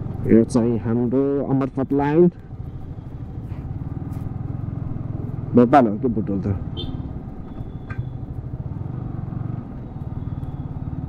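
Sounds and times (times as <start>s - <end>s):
motorcycle engine running at low revs: 0.0s - 11.0s.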